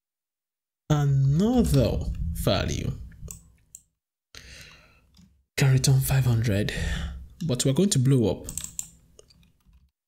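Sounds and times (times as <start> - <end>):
computer keys clicking: 8.5 - 9.9.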